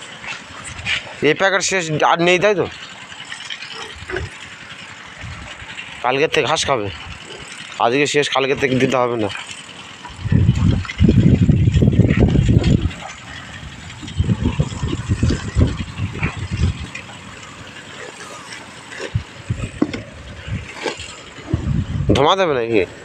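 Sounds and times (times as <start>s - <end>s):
wind buffeting microphone: 3.9s - 7.4s, 10.1s - 23.0s.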